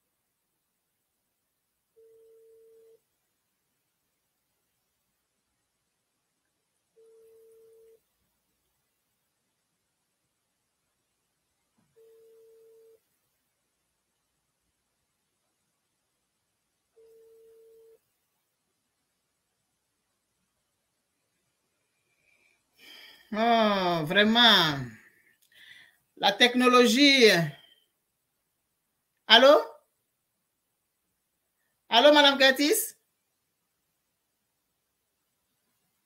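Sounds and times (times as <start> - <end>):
electronic telephone beep: 2.0 - 3.0, 7.0 - 8.0, 12.0 - 13.0, 17.0 - 18.0.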